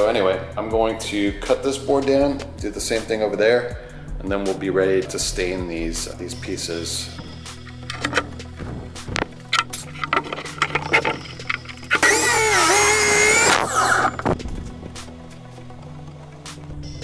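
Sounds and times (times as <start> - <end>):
handling clicks and knocks: 7.2 - 12.0
miter saw cutting wood: 11.5 - 14.3.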